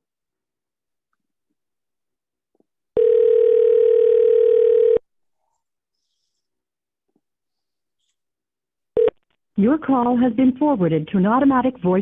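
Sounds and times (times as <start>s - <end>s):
telephone ringback tone: 3.0s - 5.0s.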